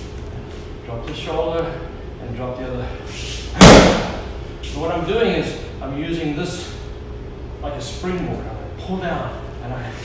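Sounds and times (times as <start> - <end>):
punch on padded strike shield: 3.6 - 4.3.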